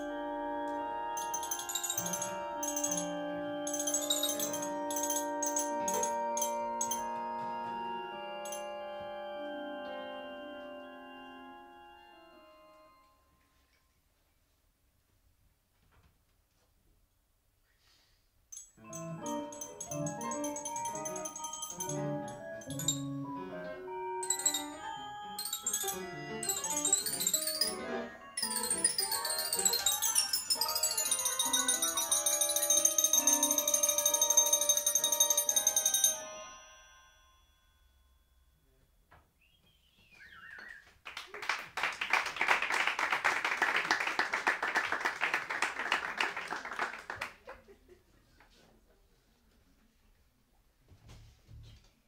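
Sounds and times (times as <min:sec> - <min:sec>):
ringing mallet percussion notes: 0:00.0 - 0:13.6, 0:18.5 - 0:38.6
high steady tones: 0:18.6 - 0:23.5, 0:24.2 - 0:38.4
audience applauding: 0:40.4 - 0:47.7.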